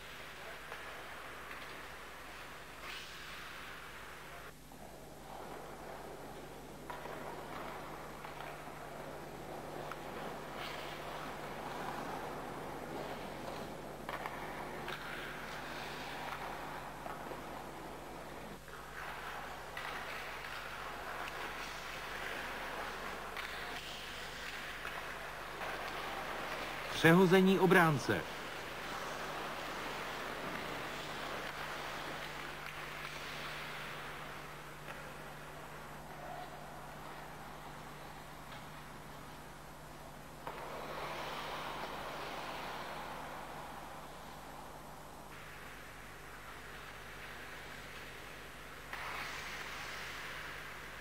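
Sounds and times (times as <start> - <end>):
ice skates scraping on ice: 0.0 - 4.2, 5.2 - 35.7, 40.4 - 51.0
steady low hum: 0.0 - 51.0.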